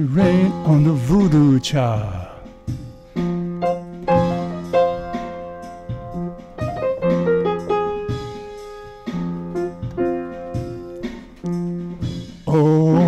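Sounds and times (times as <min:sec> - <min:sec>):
blues piano: 0:00.0 - 0:13.0.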